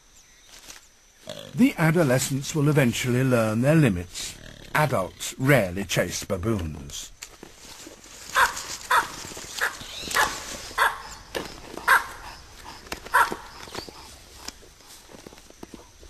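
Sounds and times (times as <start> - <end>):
baboons barking: 8.3 - 14.0.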